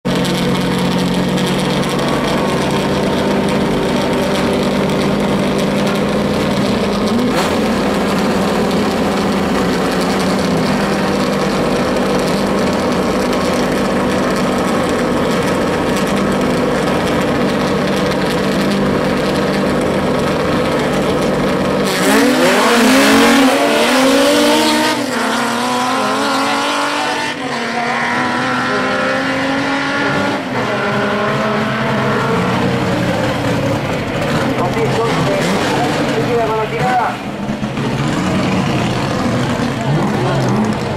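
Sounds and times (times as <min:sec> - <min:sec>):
race car engines: 0:00.0 - 0:40.9.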